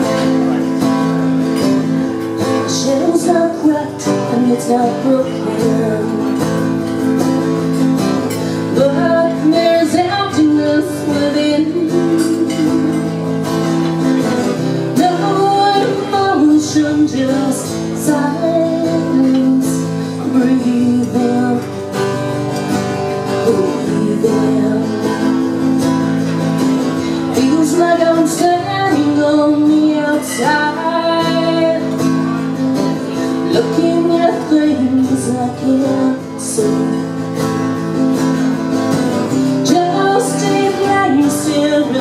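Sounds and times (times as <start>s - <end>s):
acoustic guitar country intro: 0.0s - 42.0s.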